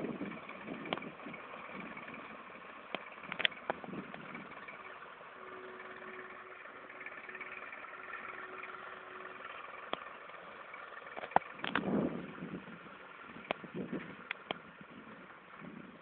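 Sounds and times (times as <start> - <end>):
tractor engine running: 0.0 - 16.0
sharp clicks: 11.1 - 11.9.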